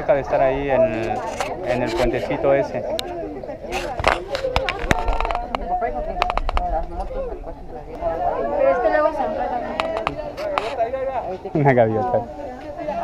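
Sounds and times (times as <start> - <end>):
people talking: 0.0 - 13.0
sharp clicks: 3.8 - 6.8.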